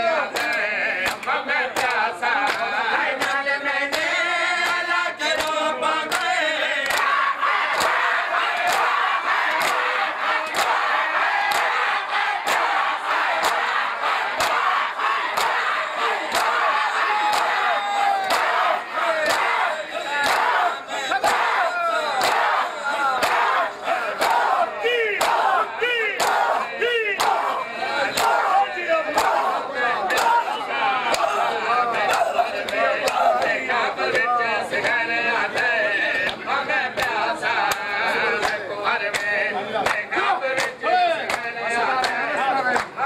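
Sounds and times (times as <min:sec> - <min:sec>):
crowd shouting and chanting: 0:00.0 - 0:43.0.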